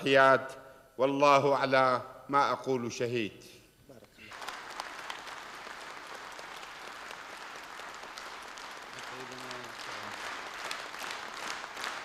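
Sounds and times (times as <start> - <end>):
audience applauding: 4.3 - 12.0.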